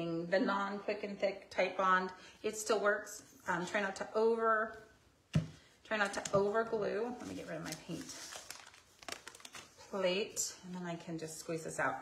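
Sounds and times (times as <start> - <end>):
rustling and crinkling: 5.4 - 11.4.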